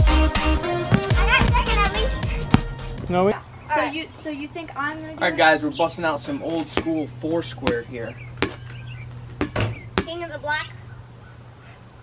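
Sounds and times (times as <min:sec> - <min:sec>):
rubber ball bouncing on concrete: 0:00.8 - 0:01.7, 0:02.4 - 0:02.8, 0:06.6 - 0:10.4.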